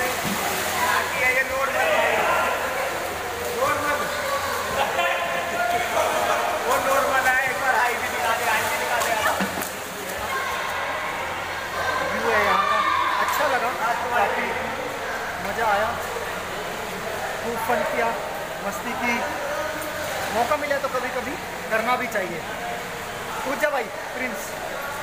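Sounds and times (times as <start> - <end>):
voices calling and chattering: 0.0 - 25.0.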